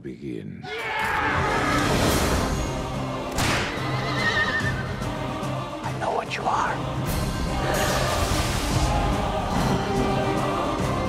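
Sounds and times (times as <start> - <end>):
film soundtrack music: 0.0 - 11.0.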